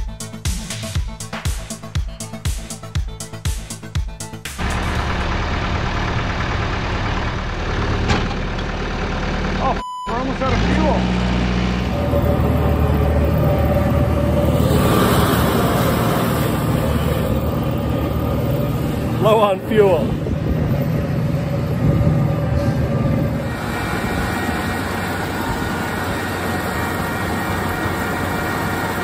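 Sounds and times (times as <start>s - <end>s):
tractor engine running: 4.5s - 29.0s.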